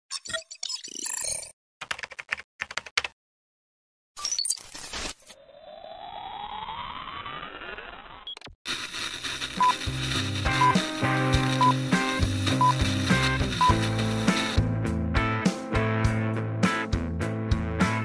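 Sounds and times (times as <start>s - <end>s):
music with steady beat: 9.3s - 18.0s.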